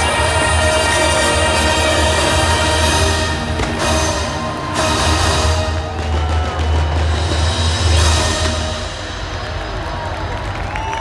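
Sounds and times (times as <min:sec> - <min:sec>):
show music with heavy drums: 0:00.0 - 0:10.6
fireworks bursting and crackling: 0:03.0 - 0:11.0.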